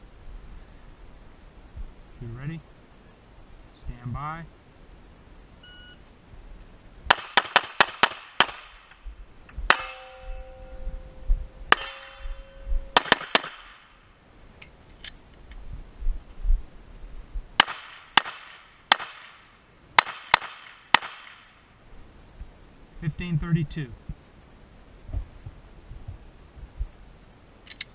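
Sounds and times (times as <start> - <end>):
pistol shots: 7.1 - 9.0, 9.7 - 10.2, 11.7 - 14.0, 17.6 - 21.5
steel target ringing: 9.7 - 13.4.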